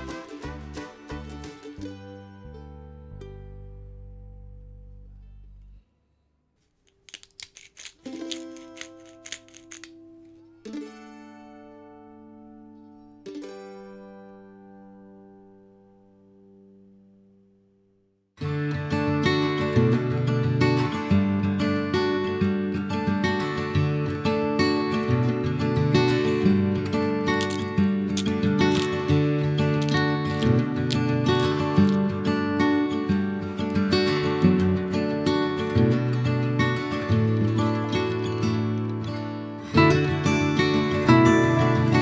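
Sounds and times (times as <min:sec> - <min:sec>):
strummed acoustic guitar: 0:00.0 - 0:03.6, 0:09.9 - 0:17.1, 0:18.4 - 0:42.0
background music: 0:00.0 - 0:04.6, 0:39.8 - 0:42.0
plucked notes: 0:00.0 - 0:05.3, 0:08.1 - 0:15.4, 0:25.0 - 0:42.0.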